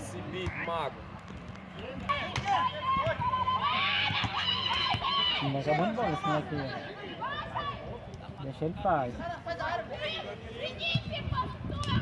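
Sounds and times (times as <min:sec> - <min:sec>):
players shouting: 0:01.8 - 0:08.1.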